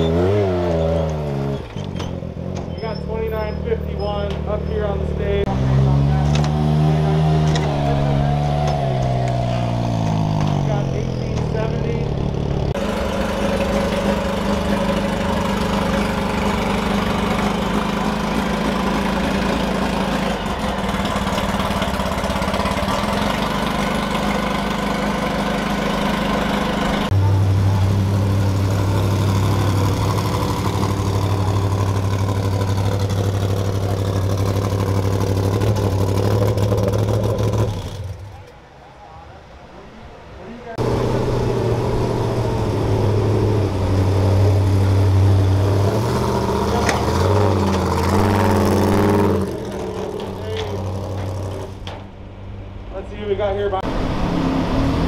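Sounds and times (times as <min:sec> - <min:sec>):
race engines idling: 0:00.0 - 0:53.9
crowd chatter: 0:38.2 - 0:40.8.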